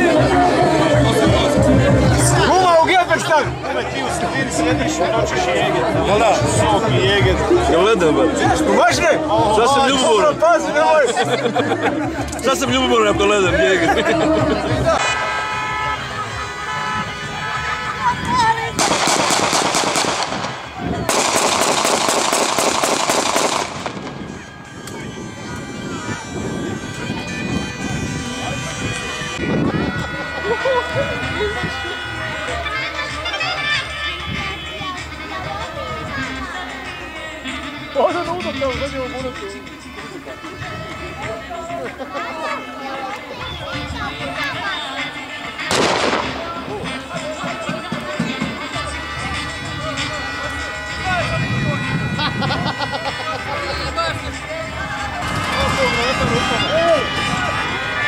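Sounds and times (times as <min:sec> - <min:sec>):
crowd voices: 0:00.0 - 0:58.0
music: 0:00.0 - 0:58.0
rapid automatic gunfire: 0:18.8 - 0:24.0, 0:45.7 - 0:46.4
loud bang with echo: 0:45.7 - 0:47.0.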